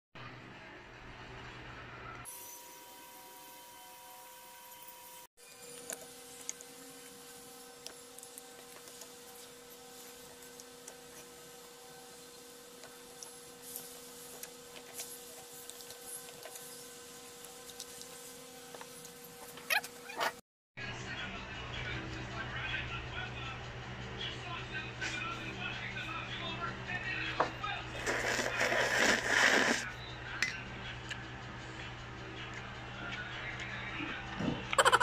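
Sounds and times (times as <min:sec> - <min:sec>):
fork scraping a bowl: 0:28.0 - 0:29.9.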